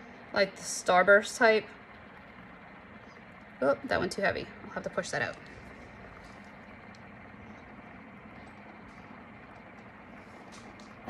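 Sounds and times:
faint background hum: 0.0 - 11.0.

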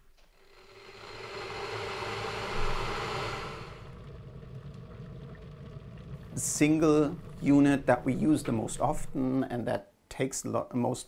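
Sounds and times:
electric kettle heating water: 0.2 - 9.4.

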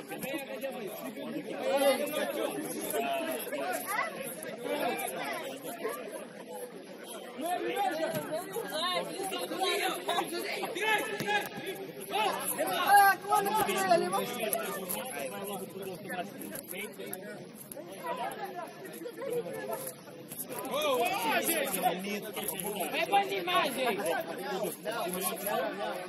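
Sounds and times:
people calling out and talking: 0.0 - 26.0.

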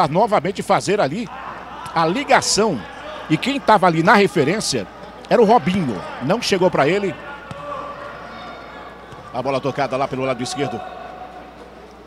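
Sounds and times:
court background noise: 0.0 - 12.0.

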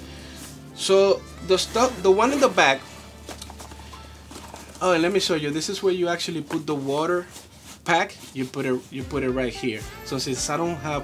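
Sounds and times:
fabric rustling: 1.5 - 9.0.

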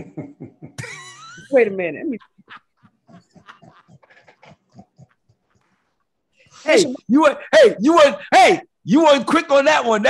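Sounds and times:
breathy laughter: 0.0 - 1.6, 2.2 - 6.1.

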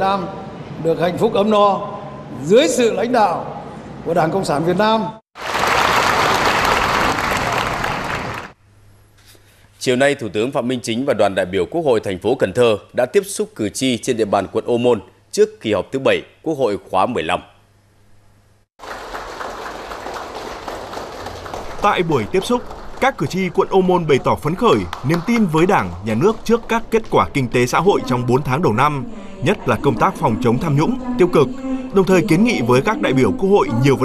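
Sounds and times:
audience applauding: 5.4 - 8.6, 18.8 - 27.4.

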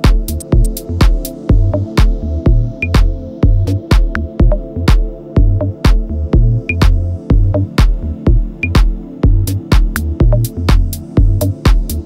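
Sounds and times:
deep synth bass: 0.0 - 12.0
kick drum: 0.0 - 12.0.

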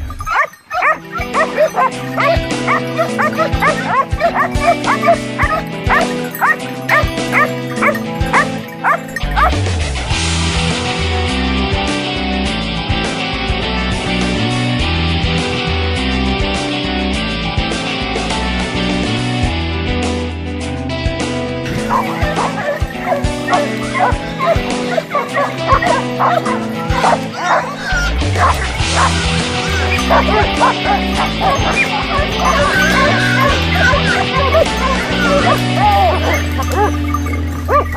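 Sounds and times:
hounds barking in yelps: 0.0 - 9.6, 21.7 - 37.9
background music with bass beat: 1.0 - 37.9.

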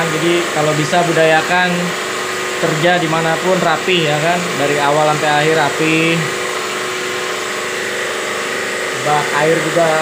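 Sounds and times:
jet washer motor and pump humming: 0.0 - 10.0.

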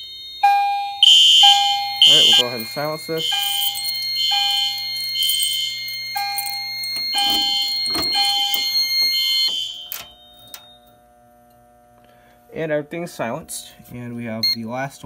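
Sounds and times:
fire alarm pulsed high tones: 0.0 - 11.0, 14.4 - 14.7.

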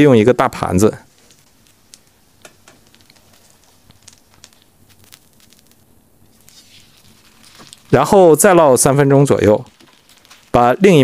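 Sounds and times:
oil crackling in frying pan: 0.0 - 11.0.

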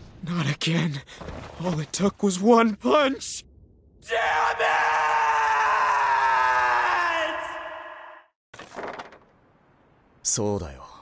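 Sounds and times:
man yelling in frustration: 4.1 - 8.2.

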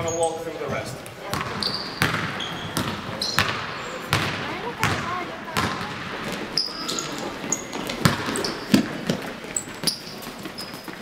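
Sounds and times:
sneakers squeaking on floor: 0.0 - 11.0
basketball bouncing on hardwood: 1.3 - 6.4, 7.8 - 9.2.

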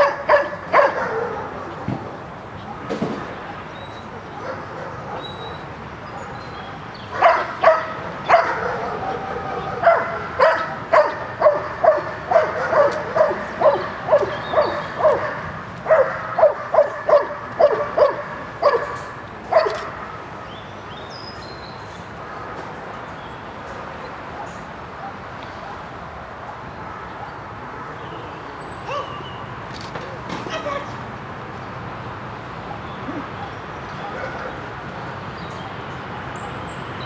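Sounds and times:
dog barking: 0.0 - 1.7, 4.3 - 6.5, 7.1 - 20.0, 24.4 - 25.9, 28.9 - 29.2, 32.6 - 34.7.

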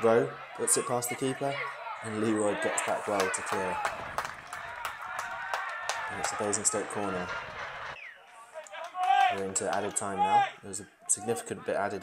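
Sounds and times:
distant shouts: 0.0 - 11.7.

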